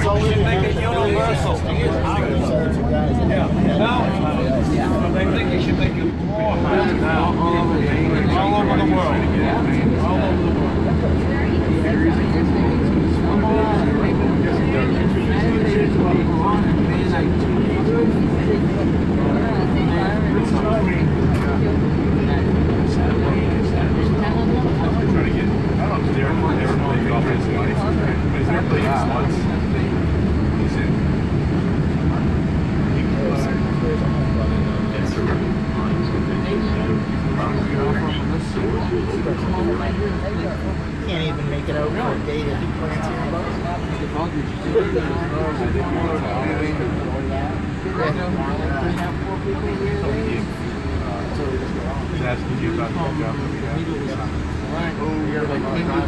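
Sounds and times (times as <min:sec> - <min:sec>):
faint steady whine: 0:00.0 - 0:56.0.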